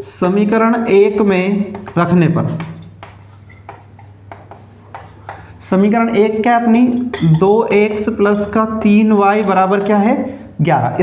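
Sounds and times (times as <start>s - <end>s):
marker pen scratching on whiteboard: 1.0s - 10.2s.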